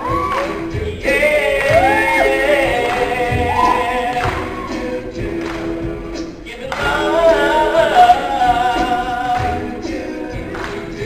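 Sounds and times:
male a cappella group singing: 0.0 - 11.0.

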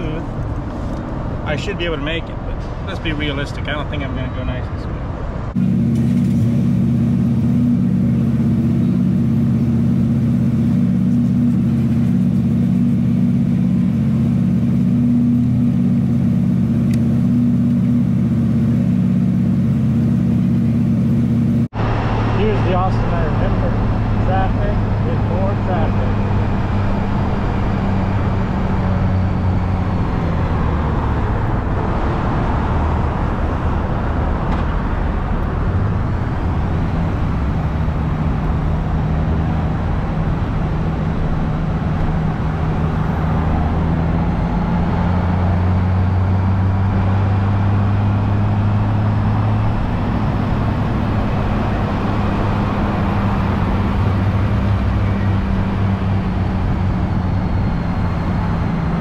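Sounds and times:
road noise: 0.0 - 59.0
motorcycle engine: 5.5 - 59.0.

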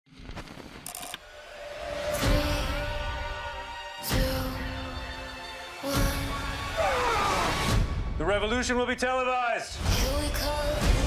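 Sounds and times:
vinyl crackle: 0.1 - 0.9.

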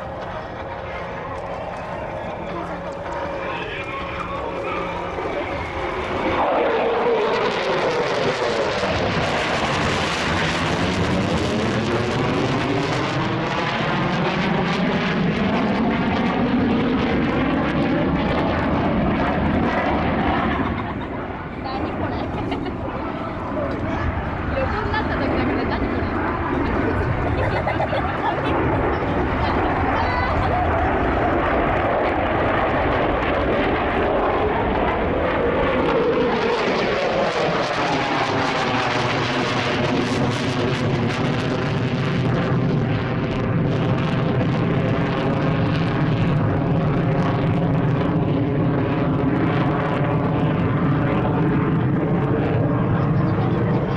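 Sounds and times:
jet engines rushing: 0.0 - 53.9.

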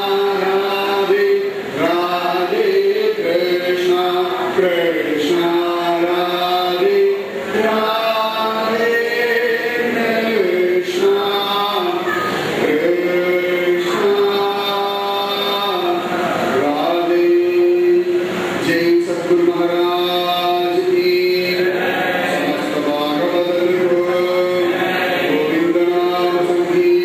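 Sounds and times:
man singing into microphone: 0.0 - 27.0.

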